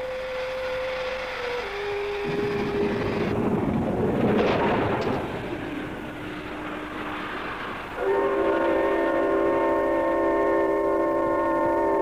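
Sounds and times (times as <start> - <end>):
railway whistle blast: 0.0 - 3.4, 6.1 - 12.0
locomotive rushing noise: 0.0 - 12.0.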